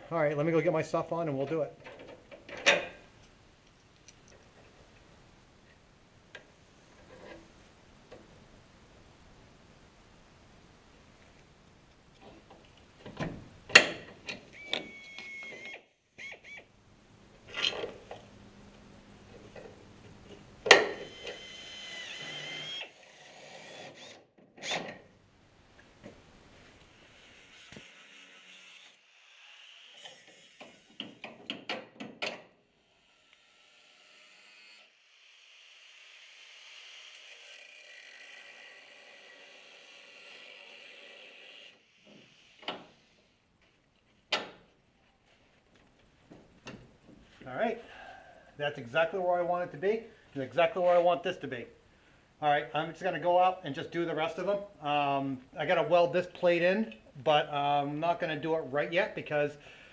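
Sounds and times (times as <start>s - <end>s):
metal clanks and knocks: 1.8s - 3.0s
angle grinder cutting steel: 20.8s - 24.1s, 26.9s - 31.0s, 35.8s - 42.6s.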